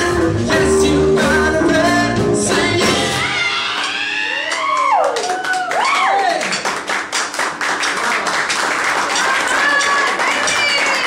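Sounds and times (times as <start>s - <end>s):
male singer vocal run: 0.0s - 3.2s
pop-gospel band playing: 0.0s - 4.2s
audience applause: 3.6s - 11.0s.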